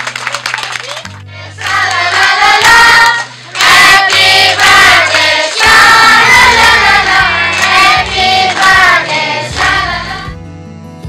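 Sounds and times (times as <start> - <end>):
children singing in chorus: 1.5 - 10.3.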